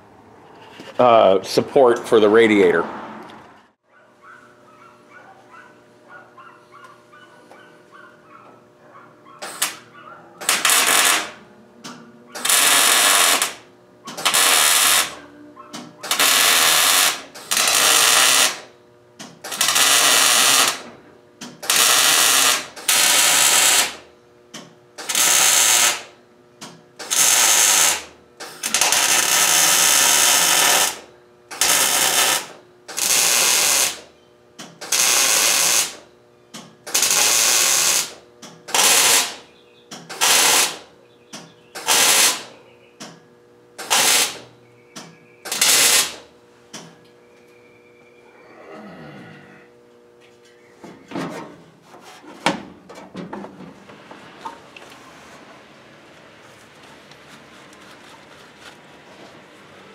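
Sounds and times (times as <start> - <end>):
arc welding crackle: 10.4 - 11.4, 12.4 - 15.2, 16.0 - 18.7, 19.4 - 20.9, 21.6 - 24.0, 25.0 - 26.2, 27.0 - 34.1, 34.8 - 36.1, 36.8 - 39.5, 40.1 - 40.9, 41.8 - 42.5, 43.8 - 44.5, 45.5 - 46.3.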